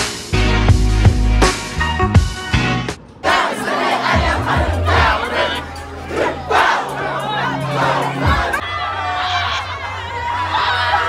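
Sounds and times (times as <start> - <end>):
music with steady bass line: 0.0 - 3.0
crowd shouting and cheering: 3.0 - 11.0.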